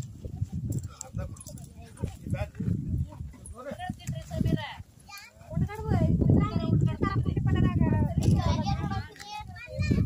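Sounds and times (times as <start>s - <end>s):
people talking outdoors: 0.0s - 10.0s.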